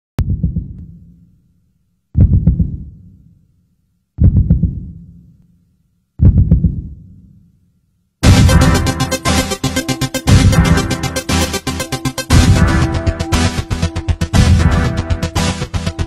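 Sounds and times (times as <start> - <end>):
heartbeat-like thumping pulses: 0.2 - 1.1, 2.2 - 3.2, 4.2 - 5.2, 6.2 - 7.2, 8.2 - 16.0.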